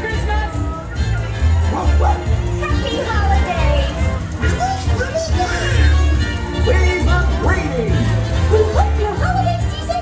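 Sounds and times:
cartoon dog barks: 1.7s - 2.3s.

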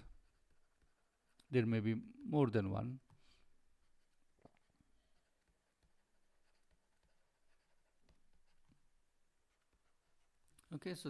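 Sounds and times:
stylus writing on tablet: 0.0s - 11.0s.

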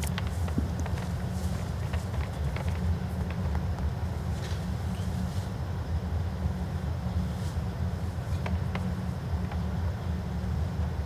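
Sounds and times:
low rumble of indoor hall: 0.0s - 11.0s.

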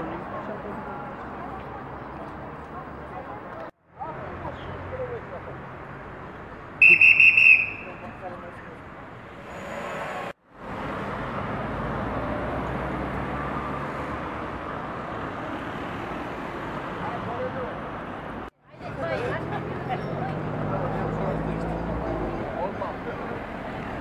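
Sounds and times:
street noise: 0.0s - 24.0s
police whistle blast: 6.8s - 8.0s.

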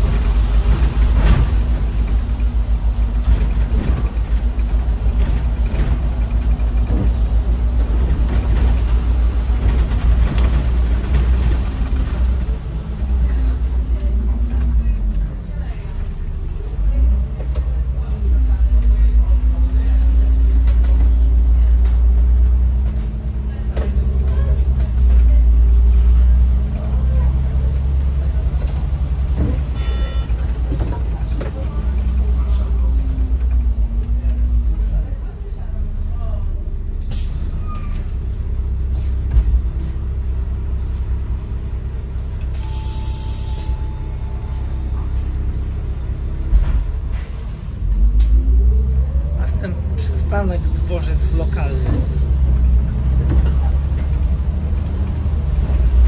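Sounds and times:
bus engine accelerating: 0.0s - 56.0s
steady beep: 29.8s - 30.3s.

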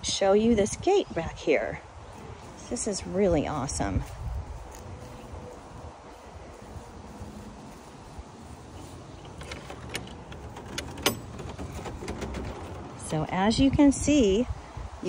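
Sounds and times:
wind rumble on microphone: 0.0s - 15.0s
gate latch clack: 9.2s - 13.2s
gate latch clicks: 9.2s - 13.2s.

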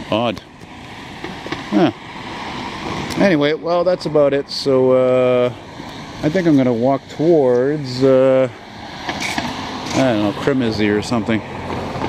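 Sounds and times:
street background hiss: 0.0s - 12.0s.

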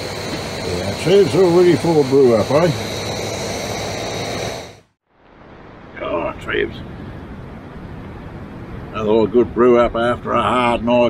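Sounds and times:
camp stove burner hissing: 0.0s - 5.0s
faint high whine: 0.0s - 11.0s
outdoor background: 0.0s - 11.0s.

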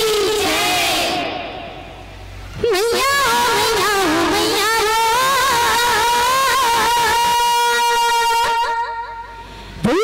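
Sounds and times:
girl singing through loudspeakers: 0.0s - 1.3s, 2.6s - 9.2s.

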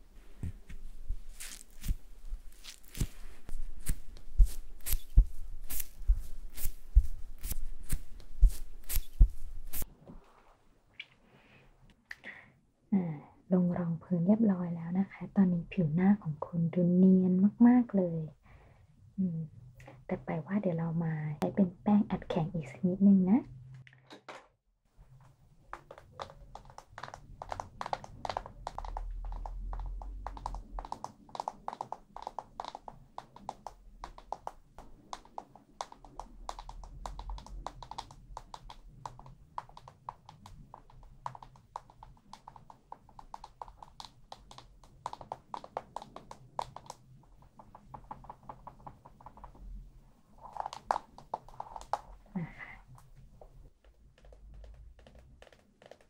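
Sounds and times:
taps and scratchy clicks: 2.6s - 9.8s, 25.1s - 49.8s, 50.4s - 52.3s, 52.9s - 56.0s.

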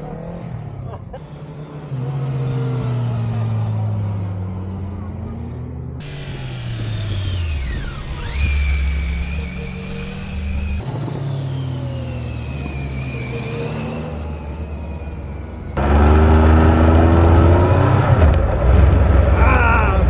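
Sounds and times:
motorcycle engines running: 0.0s - 20.0s.

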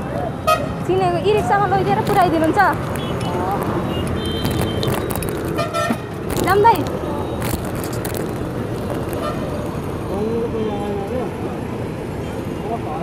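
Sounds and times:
busy road traffic: 0.0s - 13.0s.

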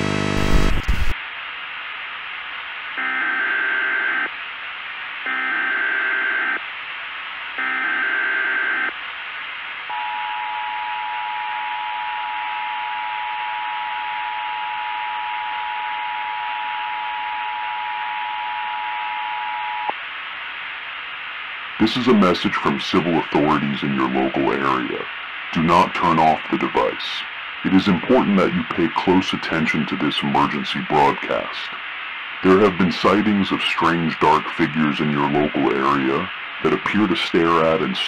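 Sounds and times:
steady hiss: 0.7s - 3.0s, 19.9s - 38.0s
two-tone alarm: 5.3s - 6.6s, 9.9s - 19.9s.

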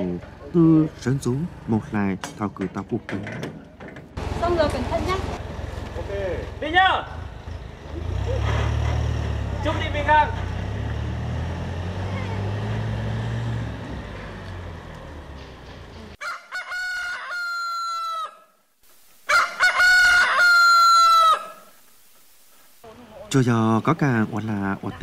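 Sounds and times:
truck engine rumbling: 0.0s - 16.2s
rooster crowing: 16.2s - 18.6s, 19.3s - 21.8s.

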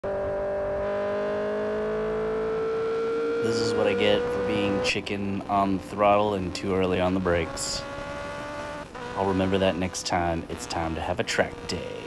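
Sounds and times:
motorcycle engine at high speed: 0.0s - 12.0s.

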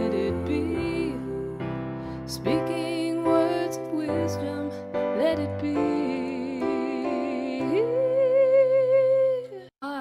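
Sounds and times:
new song: 0.0s - 9.5s.

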